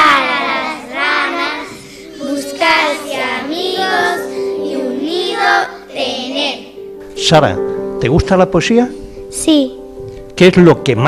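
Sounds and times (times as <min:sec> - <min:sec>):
children singing in unison: 0:00.0 - 0:06.8.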